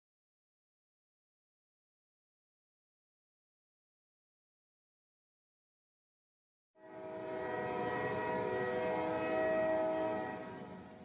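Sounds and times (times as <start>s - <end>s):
sustained chord of steady tones: 6.8s - 11.0s.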